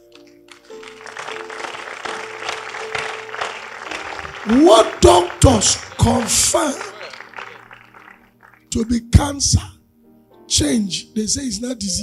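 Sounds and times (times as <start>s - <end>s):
congregation applauding: 0.2s - 9.0s.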